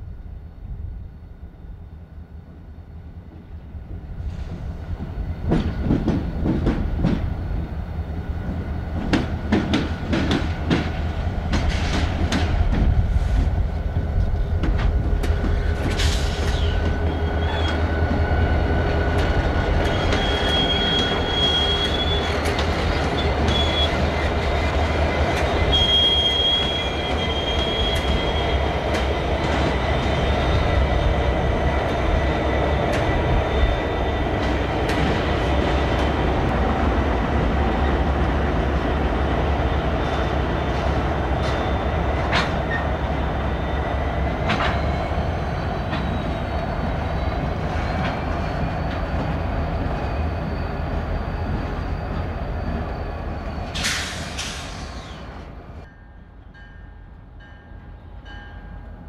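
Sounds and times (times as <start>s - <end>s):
diesel locomotive engine drone: 0.0s - 59.0s
high wheel squeal: 16.0s - 18.4s, 19.6s - 24.6s, 25.2s - 28.9s, 32.2s - 36.5s, 39.8s - 55.7s.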